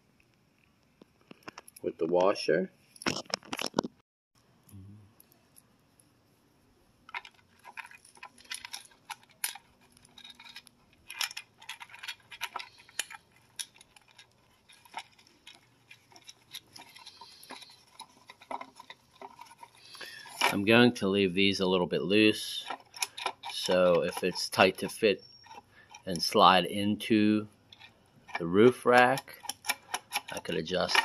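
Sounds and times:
screw and washer clinking on plastic: 7.1 - 20.6, 22.5 - 26.3, 27.7 - 31.0.

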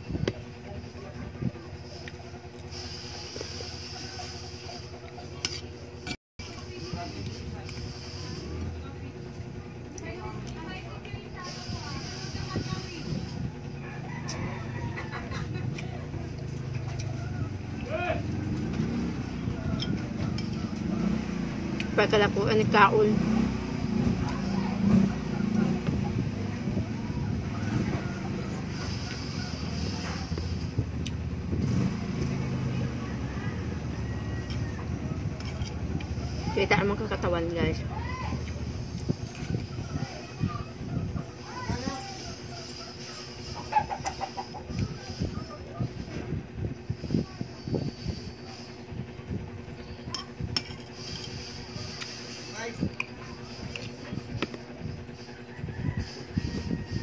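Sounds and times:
engine running drone: 0.0 - 57.0
chicken clucking: 42.4 - 45.8.

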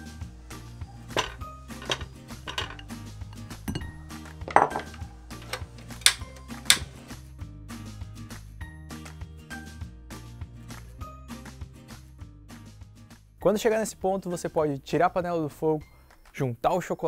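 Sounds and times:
background music: 0.0 - 17.0
bowl and spatula knocking on saucepan: 1.2 - 2.9, 3.7 - 7.0.

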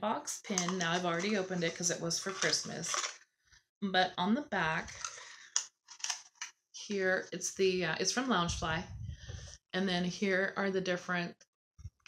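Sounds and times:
cardboard package rustling: 0.5 - 3.2, 4.9 - 6.5.

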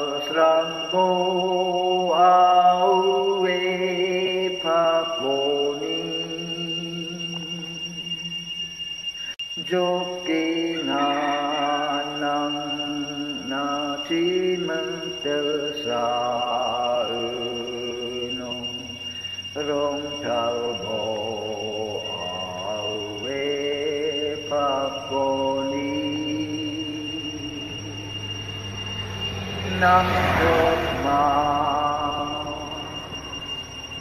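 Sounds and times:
man chanting: 0.0 - 7.6, 9.6 - 28.1, 29.6 - 33.1
man singing a hymn: 0.0 - 8.1, 9.6 - 28.1, 29.6 - 33.2
high-pitched whine: 0.0 - 34.0
steady high thin tone: 0.0 - 34.0.

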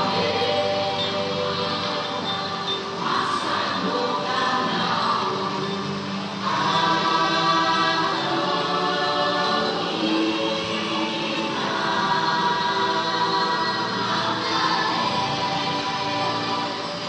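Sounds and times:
choir singing long notes: 0.0 - 17.0.

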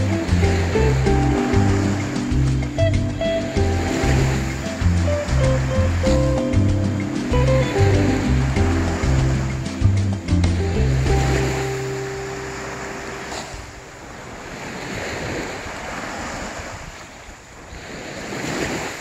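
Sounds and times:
background music: 0.0 - 13.3
waves breaking on sandy beach: 0.0 - 19.0.

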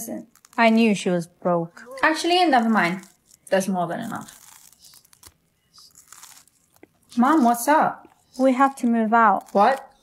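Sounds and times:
cracker crunching when chewed: 0.3 - 0.8, 2.4 - 10.0.

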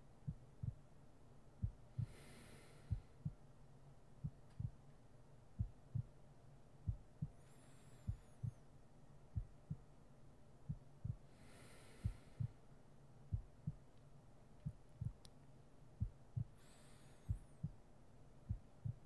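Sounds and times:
steady low hum: 0.0 - 19.0
slow heartbeat thumps: 0.2 - 0.9, 1.6 - 2.3, 2.9 - 3.5, 4.2 - 4.8, 5.5 - 6.2, 6.8 - 8.6, 9.3 - 9.9, 10.6 - 11.3, 12.0 - 12.6, 13.3 - 13.9, 14.6 - 15.2, 16.0 - 17.8, 18.5 - 19.0
soft breaths: 1.6 - 3.5, 6.8 - 8.8, 10.7 - 15.3, 16.0 - 19.0.

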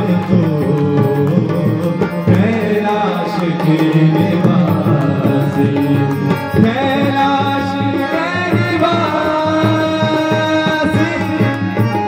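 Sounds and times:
harmonium chords: 0.0 - 12.0
man singing: 0.0 - 12.0
tabla strokes: 0.0 - 12.0.

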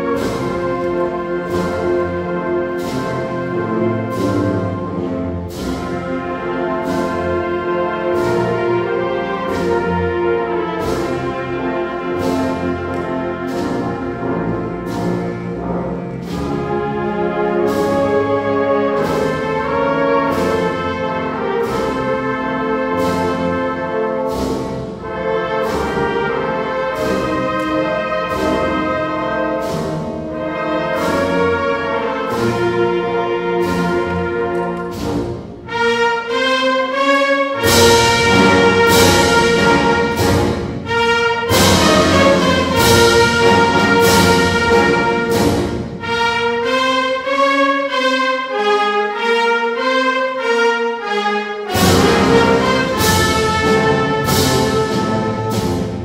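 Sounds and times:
wind band playing processional march: 0.0 - 56.0.

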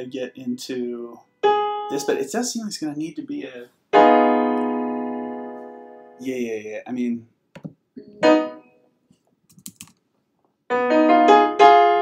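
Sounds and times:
digital piano chord ringing: 1.4 - 2.4, 4.0 - 6.5, 8.0 - 8.7.

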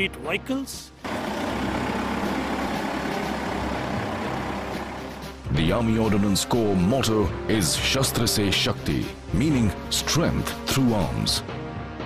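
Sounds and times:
heavy truck engine running: 1.0 - 5.5.

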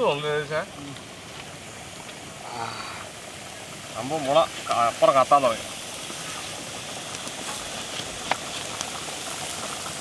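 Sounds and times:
wood fire hissing: 0.0 - 10.0.

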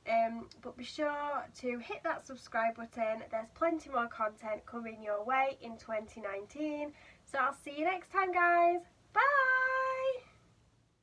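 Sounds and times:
woman calling sing-song: 2.5 - 10.4.

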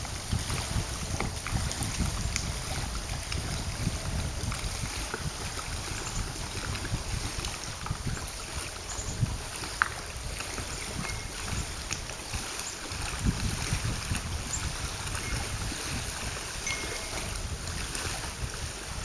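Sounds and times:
waves lapping at shore: 0.0 - 19.0
wind buffeting microphone: 0.0 - 19.0.

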